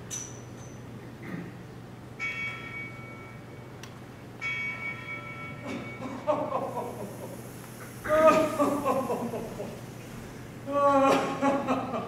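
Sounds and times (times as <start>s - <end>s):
bell struck and ringing: 2.2s - 3.8s, 4.4s - 6.5s
voice: 8.1s - 9.7s.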